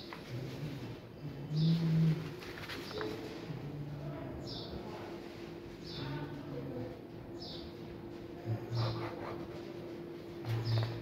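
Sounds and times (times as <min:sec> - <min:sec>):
paper rustling: 0:02.3 - 0:03.5.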